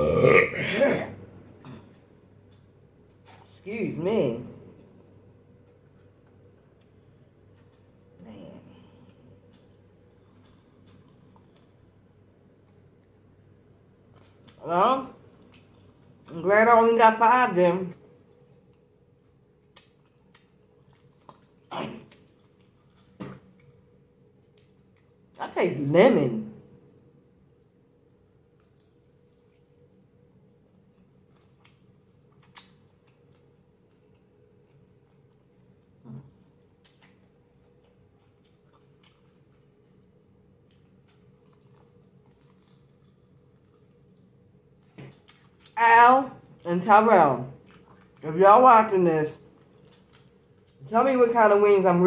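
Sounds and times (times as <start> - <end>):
low steady hum: 0.0 - 52.0
faint chewing: 5.6 - 14.6, 17.9 - 25.4, 28.0 - 45.8, 47.6 - 48.3, 49.4 - 50.9
mouth chewing: 30.9 - 39.6, 40.6 - 44.3.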